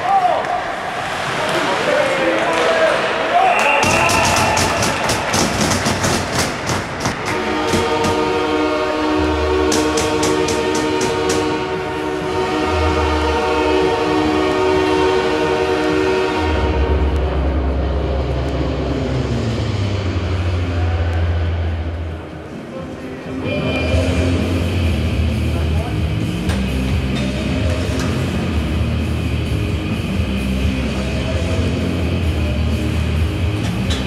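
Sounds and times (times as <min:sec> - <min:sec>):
sharp clacks: 0:03.6 - 0:08.2, 0:09.7 - 0:11.5
arena goal horn: 0:07.3 - 0:17.1.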